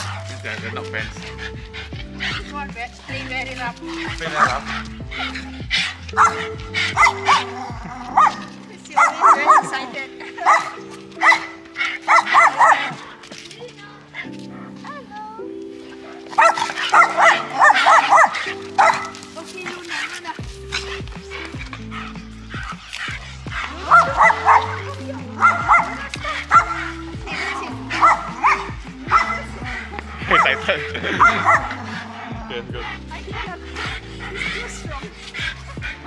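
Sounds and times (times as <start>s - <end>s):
background music with bass line: 0.0s - 13.1s, 16.2s - 36.0s
dogs barking and yipping: 0.0s - 36.0s.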